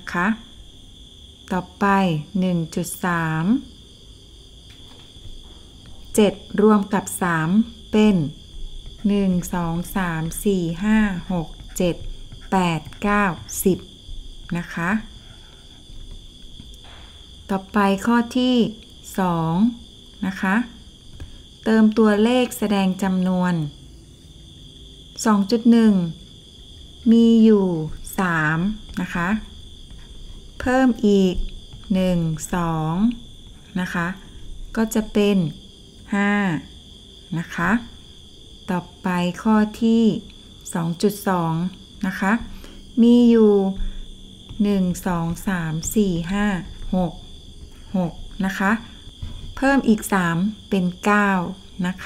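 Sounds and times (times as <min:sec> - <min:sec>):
woman speaking: 0:00.0 - 0:00.5, 0:01.5 - 0:03.7, 0:06.1 - 0:08.4, 0:09.0 - 0:15.2, 0:17.5 - 0:20.8, 0:21.6 - 0:23.7, 0:25.2 - 0:26.2, 0:27.0 - 0:29.5, 0:30.6 - 0:36.7, 0:37.3 - 0:38.0, 0:38.7 - 0:47.2, 0:47.8 - 0:49.0, 0:49.6 - 0:52.0.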